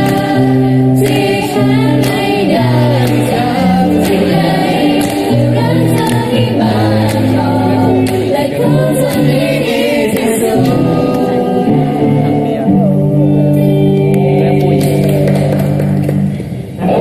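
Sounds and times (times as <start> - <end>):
group singing slow song: 0.0 - 15.1.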